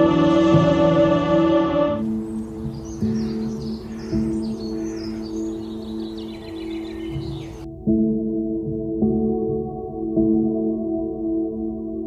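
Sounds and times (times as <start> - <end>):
songbird chirping and singing: 0.0 - 8.1
soft ambient music: 0.0 - 12.0.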